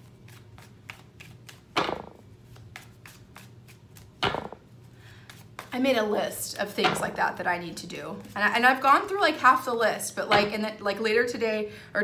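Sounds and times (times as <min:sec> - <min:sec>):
cards being shuffled: 0:00.0 - 0:05.8.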